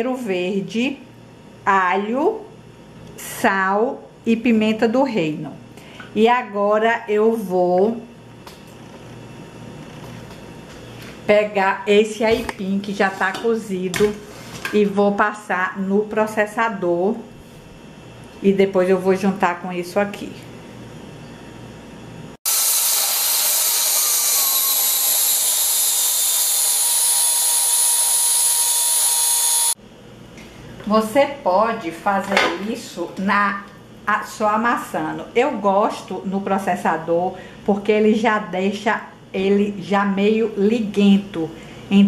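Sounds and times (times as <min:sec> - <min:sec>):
food processor motor whining: 0:22.4 - 0:29.8.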